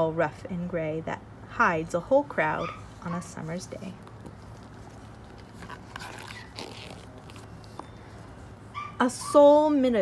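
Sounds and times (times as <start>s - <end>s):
low background hum: 0.0s - 10.0s
book pages turning: 3.5s - 8.5s.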